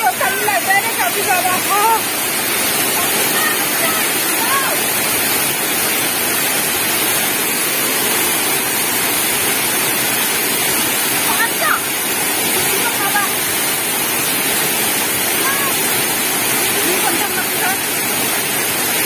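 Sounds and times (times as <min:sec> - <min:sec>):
waterfall rushing over rocks: 0:00.0 - 0:19.0.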